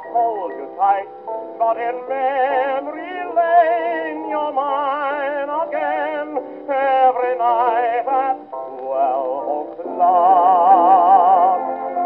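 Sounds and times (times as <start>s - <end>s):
dance orchestra waltz on old record: 0.0s - 12.0s.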